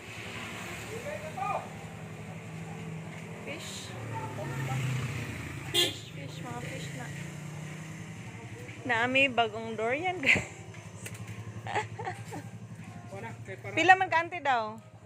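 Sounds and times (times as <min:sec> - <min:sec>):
vehicle engine humming: 0:00.0 - 0:15.0.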